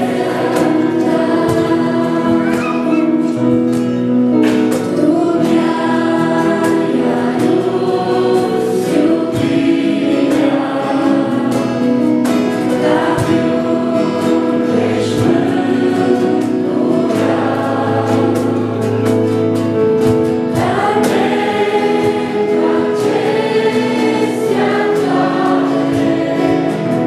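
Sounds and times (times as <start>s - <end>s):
women singing a duet: 0.0s - 3.2s, 4.9s - 11.7s
electronic keyboard: 0.0s - 27.0s.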